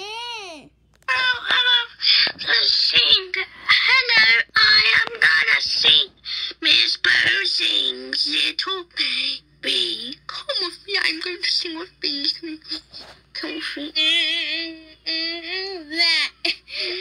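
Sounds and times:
lower cartoon voice: 0:00.0 - 0:01.5.

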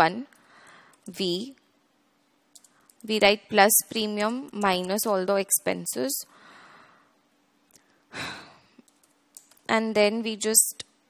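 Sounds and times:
breathy exhale: 0:06.3 - 0:07.2.

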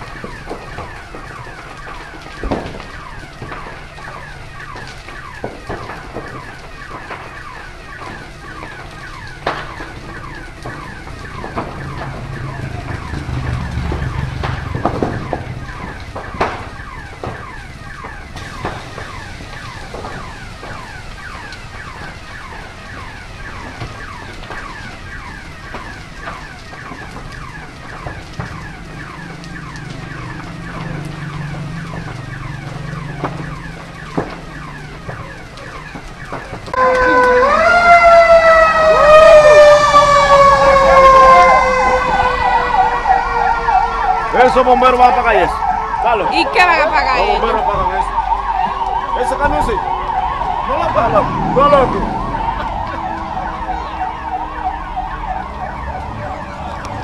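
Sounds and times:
fire cracking: 0:00.0 - 0:57.0
low rumble: 0:11.2 - 0:17.3, 0:49.8 - 0:57.0.

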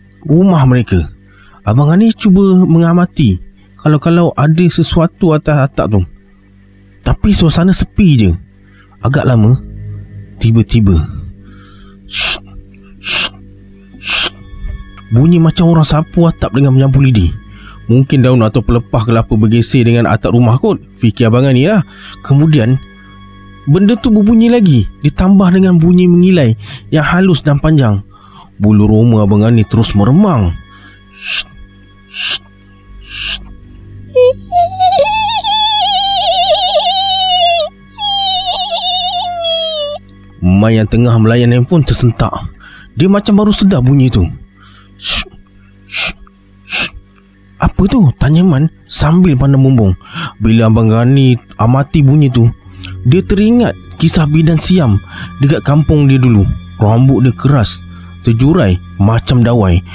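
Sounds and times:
low steady music drone: 0:00.0 - 0:59.9
high wavering wail: 0:30.3 - 0:33.5, 0:34.1 - 0:40.0.

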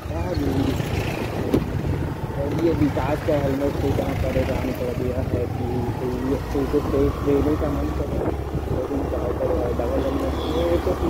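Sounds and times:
man speaking: 0:00.0 - 0:00.9, 0:02.3 - 0:11.0
wind buffeting microphone: 0:00.0 - 0:11.0.

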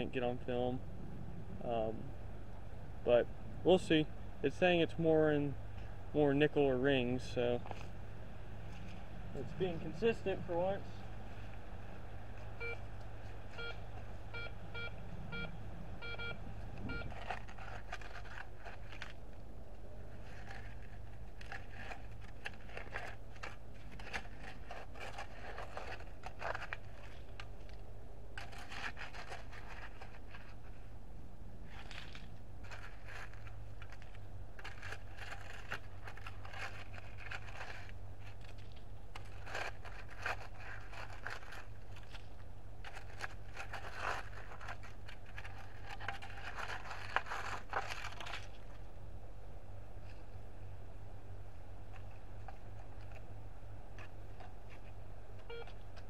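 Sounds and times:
metal detector beeping: 0:12.6 - 0:12.8, 0:13.6 - 0:17.1, 0:55.4 - 0:55.8
plastic scoop scraping dirt and gravel: 0:16.9 - 0:19.2, 0:20.1 - 0:27.8, 0:28.4 - 0:30.8, 0:31.6 - 0:48.8.

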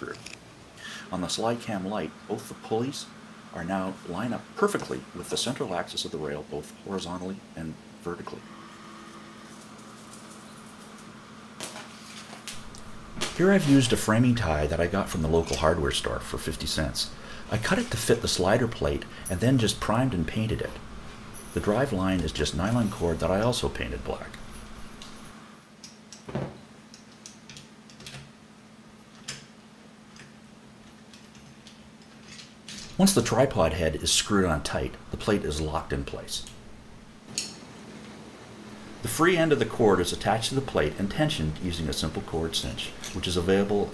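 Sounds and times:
steady low hum: 0:00.0 - 0:43.9
light scratching of small parts: 0:11.7 - 0:16.2, 0:20.6 - 0:25.4.

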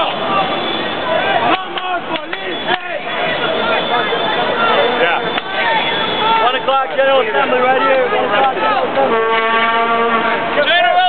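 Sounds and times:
horn steady note: 0:08.9 - 0:10.7.

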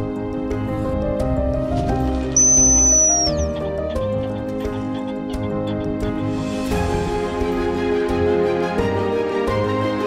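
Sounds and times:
background music: 0:00.0 - 0:10.0
high steady whistle note: 0:02.4 - 0:03.5.

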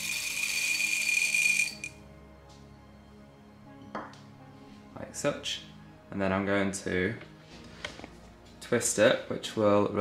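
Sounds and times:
coffee beans pouring rattle: 0:00.0 - 0:01.9
quiet background music: 0:00.0 - 0:10.0.

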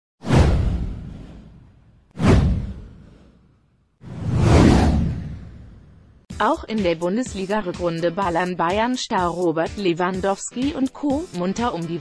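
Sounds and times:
whoosh with deep boom: 0:00.2 - 0:06.3.

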